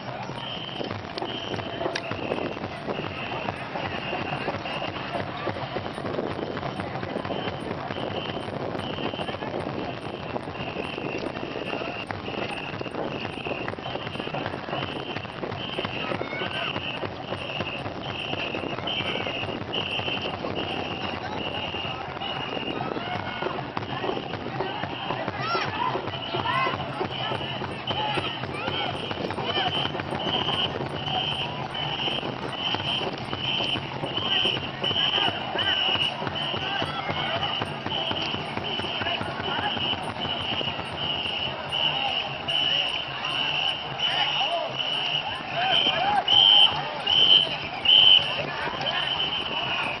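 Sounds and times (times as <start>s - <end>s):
shrill whistle blasts: 0.0s - 5.5s, 6.7s - 50.0s.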